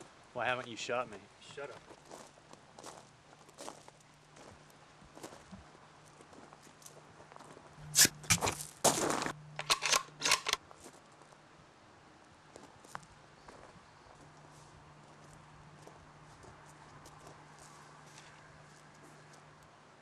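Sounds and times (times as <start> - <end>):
faint steady hum: 0.0 - 20.0
rough scuffling and crunching: 6.3 - 11.0.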